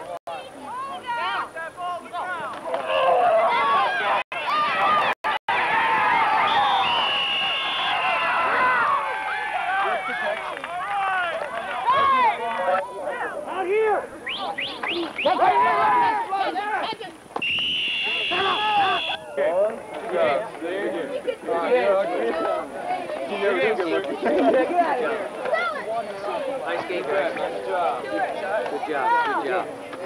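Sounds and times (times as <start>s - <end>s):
children and adults shouting: 2.1s - 14.1s, 15.2s - 17.0s, 18.0s - 19.8s
high whistle blast: 6.4s - 8.3s, 17.4s - 19.3s.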